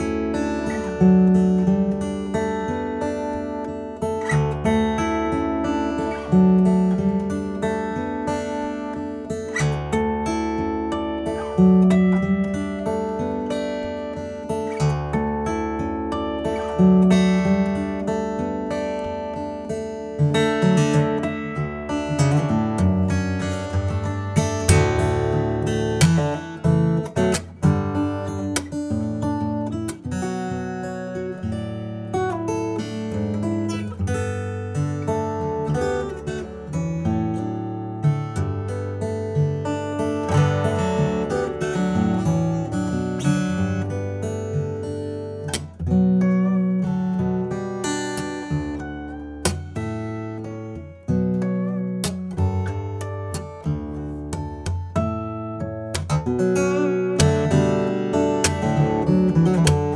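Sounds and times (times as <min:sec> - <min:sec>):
fingerstyle acoustic guitar: 0:00.0 - 0:59.9.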